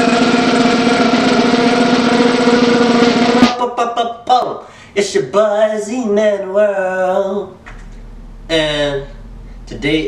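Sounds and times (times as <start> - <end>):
loud buzzing drone: 0.0 - 3.4.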